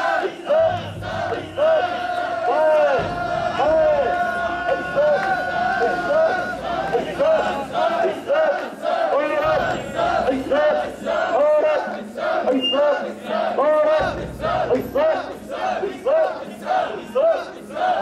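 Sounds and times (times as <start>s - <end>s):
group chanting in unison: 0.0s - 18.0s.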